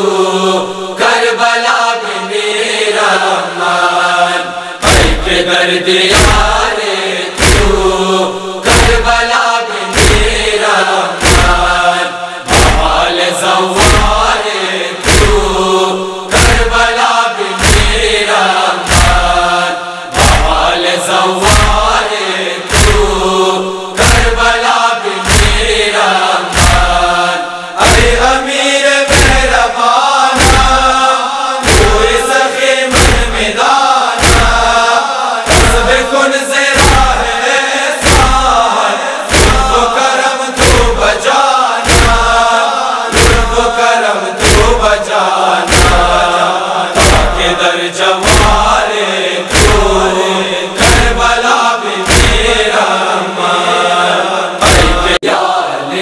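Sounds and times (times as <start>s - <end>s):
person chanting a lament: 0.0s - 56.0s
deep rhythmic thumps: 4.8s - 9.3s, 9.9s - 11.9s, 12.5s - 29.8s, 30.4s - 31.0s, 31.6s - 33.6s, 34.2s - 34.9s, 35.5s - 36.1s, 36.8s - 37.4s, 38.0s - 38.7s, 39.3s - 43.8s, 44.4s - 45.1s, 45.7s - 46.4s, 47.0s - 47.6s, 48.2s - 48.9s, 49.5s - 51.5s, 52.1s - 52.8s, 54.6s - 55.2s.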